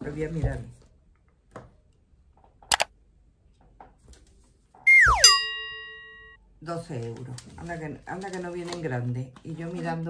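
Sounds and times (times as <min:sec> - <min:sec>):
pitched downward swoop: 0:04.9 - 0:06.3
bell ding: 0:04.9 - 0:06.4.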